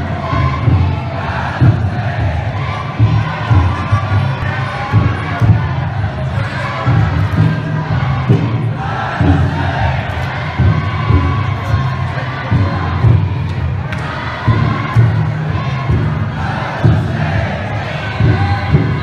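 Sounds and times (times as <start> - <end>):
crowd shouting and chanting: 0.0 - 19.0
taiko drum beating: 0.0 - 19.0.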